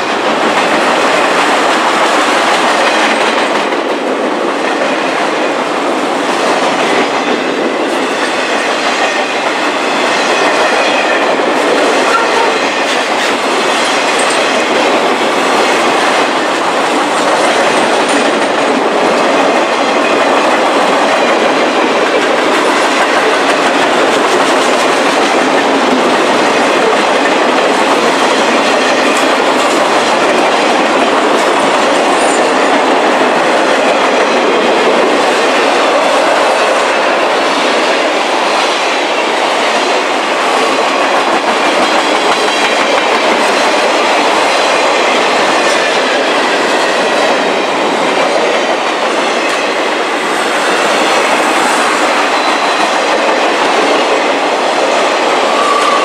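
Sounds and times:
train wheels rolling on rails: 0:00.0 - 0:56.0.

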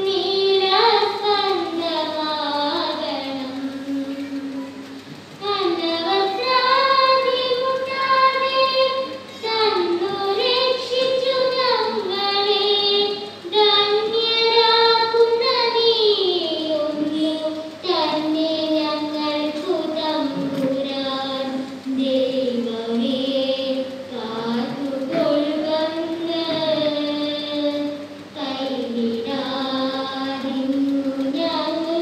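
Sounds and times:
young voices singing: 0:00.0 - 0:32.0.

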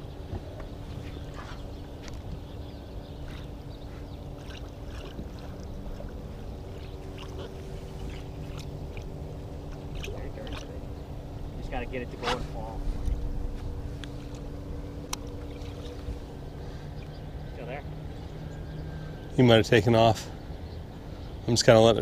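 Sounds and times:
boat engine humming: 0:00.0 - 0:22.0
water splashing: 0:03.2 - 0:11.6.

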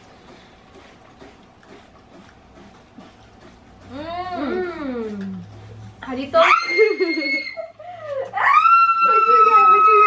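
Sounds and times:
slurping through drinking straws: 0:00.0 - 0:06.0.

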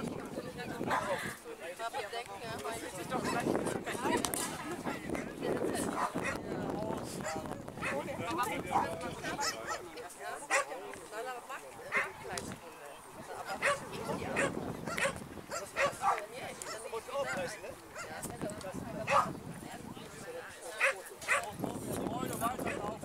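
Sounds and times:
people murmuring: 0:00.0 - 0:23.0
dog barking sharply: 0:10.5 - 0:10.8, 0:11.9 - 0:12.1, 0:13.5 - 0:13.8, 0:14.4 - 0:17.4, 0:19.1 - 0:19.3, 0:20.8 - 0:21.5.

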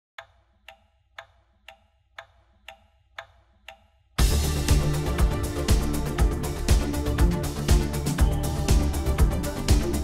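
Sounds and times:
clock ticking: 0:00.2 - 0:10.0.

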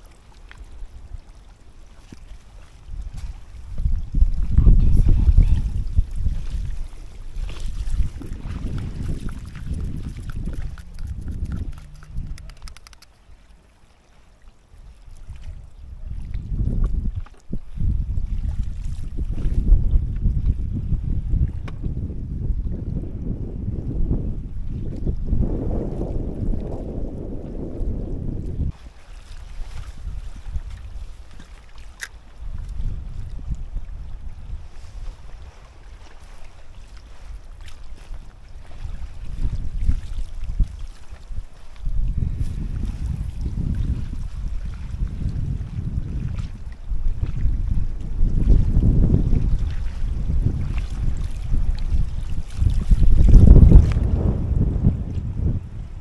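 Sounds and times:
wind buffeting microphone: 0:00.6 - 0:13.5, 0:14.8 - 0:56.0
sharp click: 0:10.2 - 0:13.1.

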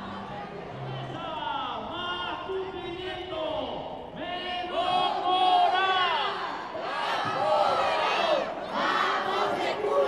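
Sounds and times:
crowd shouting a slogan: 0:04.4 - 0:10.0.

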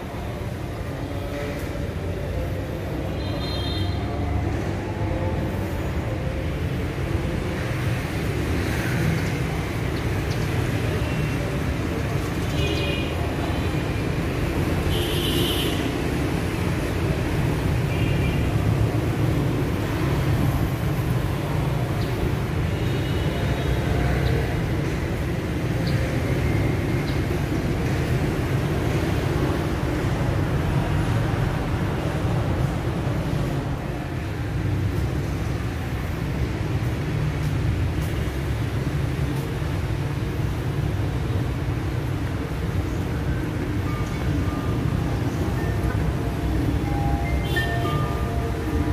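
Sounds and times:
traffic engines rumbling: 0:00.0 - 0:48.9.

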